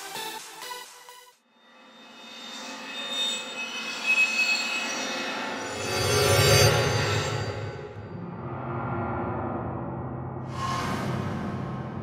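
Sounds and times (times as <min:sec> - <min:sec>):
whoosh with shimmering tones: 0:02.0 - 0:09.0
low rumble: 0:07.5 - 0:12.0.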